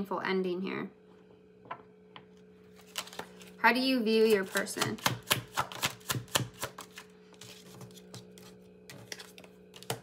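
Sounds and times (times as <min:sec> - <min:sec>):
faint steady hum: 0:00.0 - 0:10.0
cards being shuffled: 0:02.7 - 0:03.6, 0:04.3 - 0:10.0.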